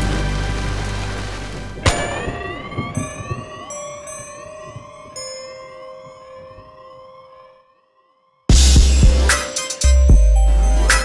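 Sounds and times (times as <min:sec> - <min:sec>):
tones gliding upward: 0:00.2 - 0:07.7
steady ringing notes: 0:01.7 - 0:07.6.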